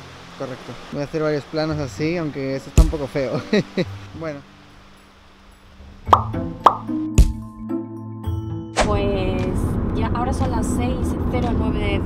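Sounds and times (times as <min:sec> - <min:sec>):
pop sound effects: 0:06.1 - 0:07.4.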